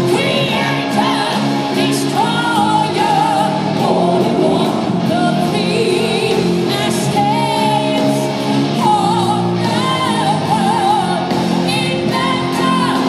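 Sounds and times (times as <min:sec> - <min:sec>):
distorted electric guitar: 0:00.0 - 0:13.0
woman singing with vibrato: 0:00.0 - 0:13.0.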